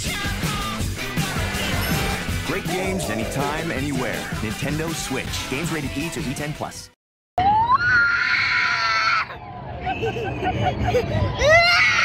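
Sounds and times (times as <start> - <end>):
child's broken vocal sounds: 2.6 - 4.4
child screaming: 7.4 - 9.3, 11.4 - 12.0.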